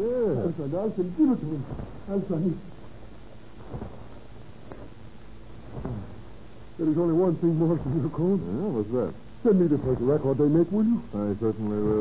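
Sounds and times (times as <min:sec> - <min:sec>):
recording hiss and rumble: 0:00.0 - 0:12.0.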